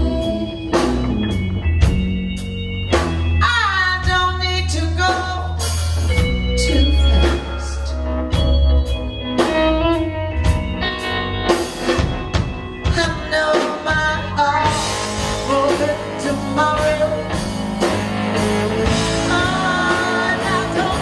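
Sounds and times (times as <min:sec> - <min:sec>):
woman singing: 0:00.0 - 0:01.1, 0:03.4 - 0:08.0, 0:12.8 - 0:17.5, 0:18.8 - 0:21.0
live blues band playing: 0:00.0 - 0:21.0.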